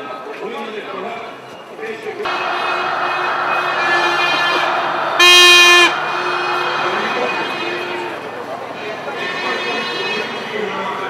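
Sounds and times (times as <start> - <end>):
crowd noise: 0.0 - 11.0
horn held tone: 2.3 - 10.5
loud horn blast: 2.3 - 10.5.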